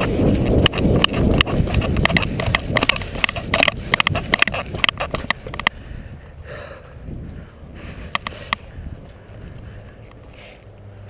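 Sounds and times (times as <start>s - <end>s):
camera rumbling over rough concrete: 0.0s - 6.1s, 7.0s - 11.0s.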